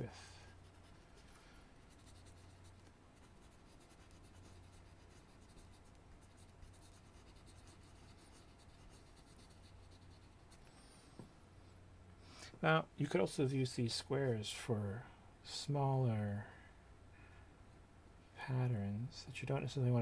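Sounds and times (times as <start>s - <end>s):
steady low hum: 0.0s - 20.0s
pencil scratching on paper: 0.6s - 10.7s.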